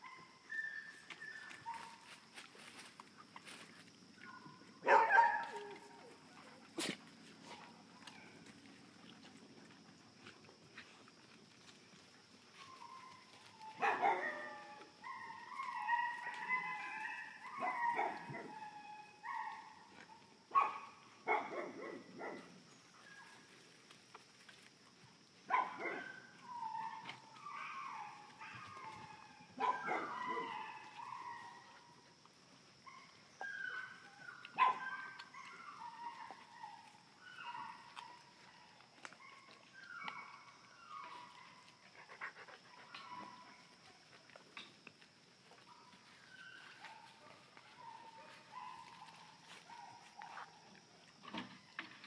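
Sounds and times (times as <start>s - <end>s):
puppies yapping and barking: 0.0s - 10.5s, 11.2s - 23.7s, 25.5s - 52.0s.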